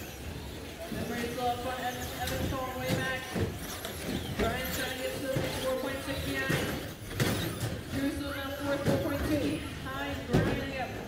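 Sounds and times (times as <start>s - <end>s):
rc truck motors whining: 0.0s - 9.7s
rc trucks knocking: 1.9s - 9.6s.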